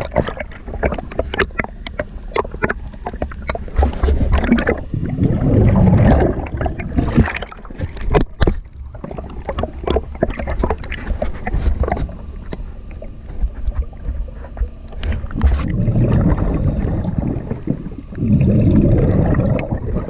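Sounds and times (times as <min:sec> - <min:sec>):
steady low rumble: 0:00.0 - 0:20.0
underwater bubbling and gurgling: 0:00.0 - 0:20.0.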